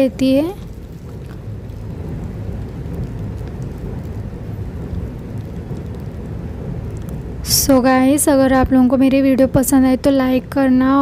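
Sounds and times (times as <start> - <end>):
low rumble: 0.0 - 11.0
rain falling: 0.0 - 11.0.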